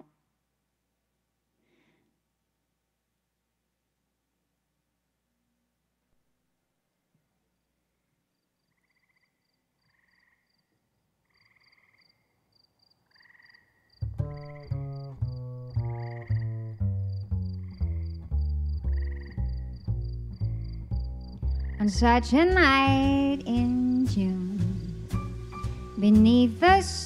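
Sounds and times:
frogs croaking: 8.0s - 22.2s
plucked bass line: 14.0s - 27.0s
high chirping: 14.2s - 22.2s.

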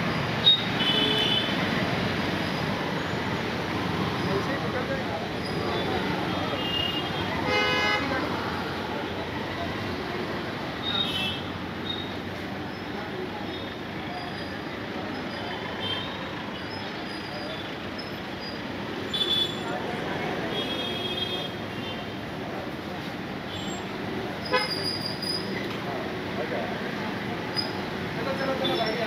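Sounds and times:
street traffic noise: 0.0s - 29.0s
vehicle horn: 0.5s - 1.5s, 6.5s - 8.2s, 24.5s - 24.8s.

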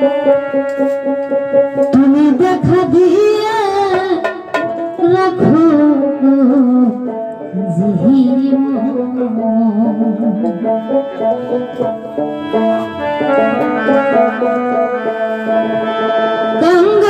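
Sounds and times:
woman singing into a microphone: 0.0s - 11.9s, 15.9s - 17.0s
hand drum: 0.0s - 17.0s
keyboard: 0.0s - 17.0s.

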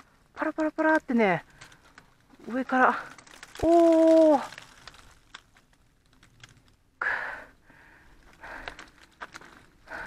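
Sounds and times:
ice pattering from branches: 0.0s - 7.0s, 8.2s - 10.0s.

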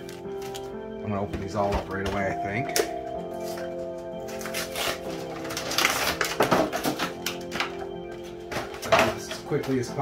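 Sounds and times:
background music with held notes: 0.0s - 10.0s
plastic packaging crinkling: 4.2s - 9.8s.

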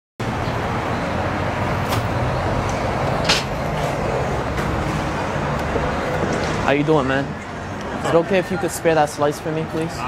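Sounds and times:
city street traffic: 0.2s - 10.0s.

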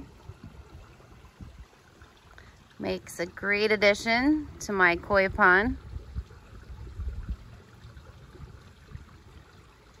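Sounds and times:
low rumble on microphone: 0.0s - 10.0s
water trickling: 0.0s - 10.0s.

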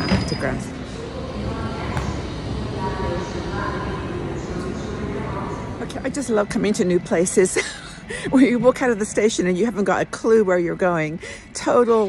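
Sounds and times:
railway station hum: 0.0s - 12.0s.

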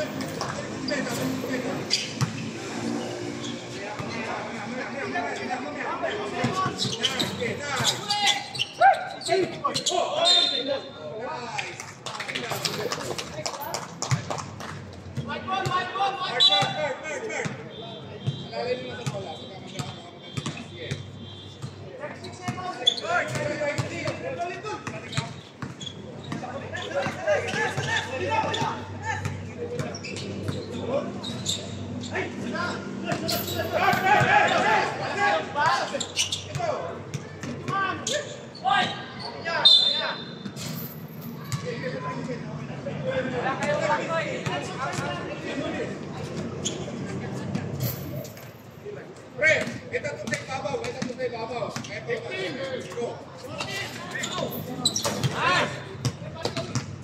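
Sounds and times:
people calling out and chattering: 0.0s - 57.0s
basketball bouncing on court: 17.4s - 21.8s, 24.8s - 27.9s, 49.6s - 51.9s, 56.0s - 57.0s.

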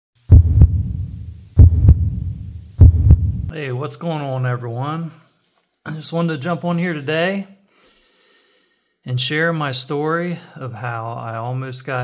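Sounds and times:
deep heartbeat-like double thumps: 0.3s - 3.5s
low rumble: 0.3s - 3.5s.

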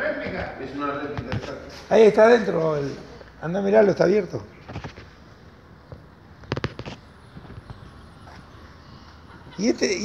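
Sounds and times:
sharp clicks and knocks: 5.9s - 7.8s.

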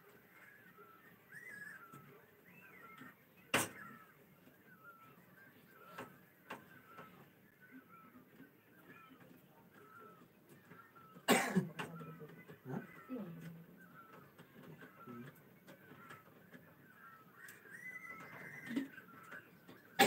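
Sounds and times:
person coughing: 11.3s - 11.7s
faint low vocal sounds: 11.8s - 14.1s.

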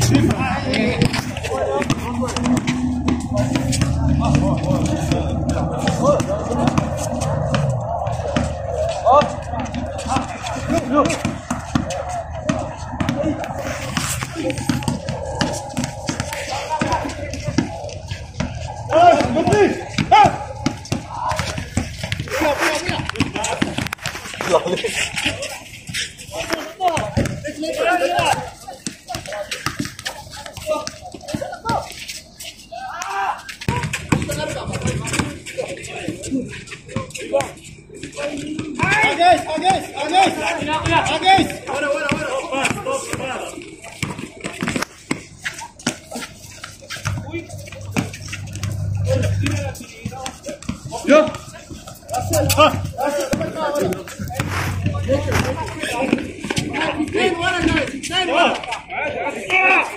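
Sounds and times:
players calling out: 0.0s - 44.5s, 45.3s - 59.9s.

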